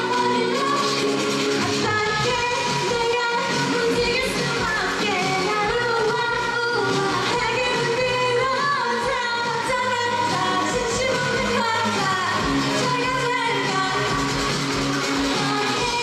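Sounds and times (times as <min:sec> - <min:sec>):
women singing: 0:00.0 - 0:14.4, 0:15.2 - 0:16.0
dance track with steady beat: 0:00.0 - 0:16.0.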